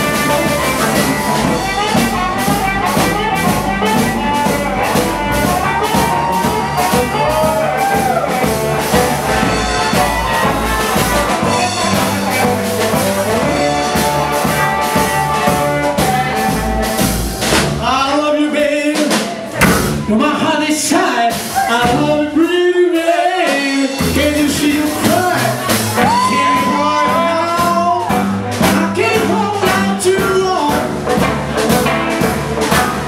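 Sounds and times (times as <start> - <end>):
electric guitar: 0.0 - 17.5, 25.0 - 33.0
harmonica bending lines: 0.0 - 17.5
drum kit shuffle beat: 0.0 - 33.0
upright bass: 0.0 - 33.0.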